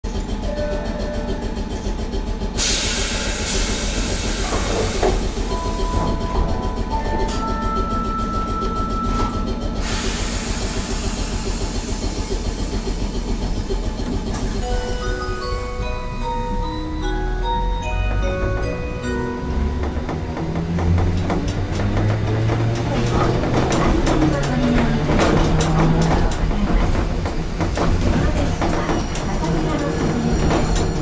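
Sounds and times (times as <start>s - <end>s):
tram equipment hum: 0.0s - 31.0s
loud hiss of air: 9.8s - 12.4s.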